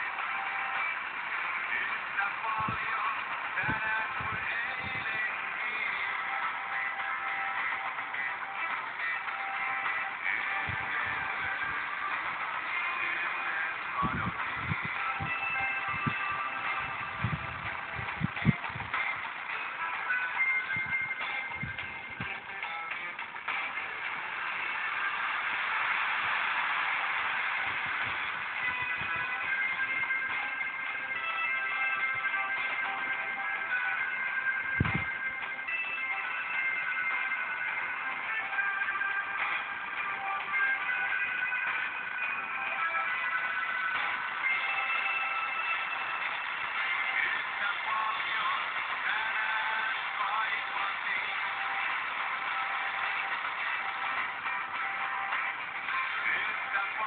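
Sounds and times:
radio static hiss: 0.0 - 31.3
faint radio music: 0.0 - 57.0.

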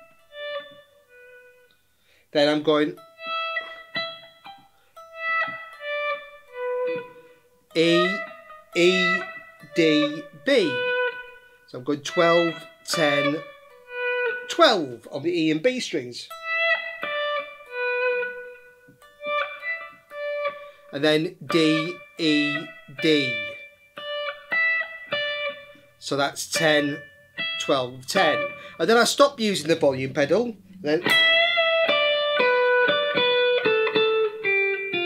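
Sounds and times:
electric guitar lead: 0.0 - 15.2, 16.3 - 35.0.

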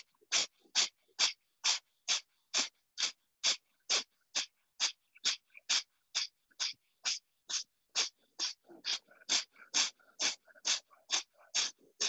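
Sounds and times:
forceful breaths through the nose: 0.0 - 12.0.

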